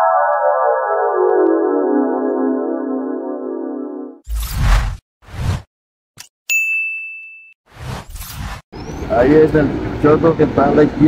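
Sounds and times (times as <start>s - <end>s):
swish: 4.3s - 5.7s, 7.7s - 8.6s
bright ding: 6.5s - 7.6s.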